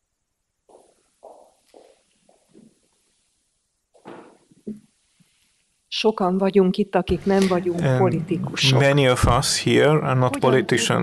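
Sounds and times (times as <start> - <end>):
footsteps on wooden floor: 0.7 - 2.7, 4.0 - 4.8.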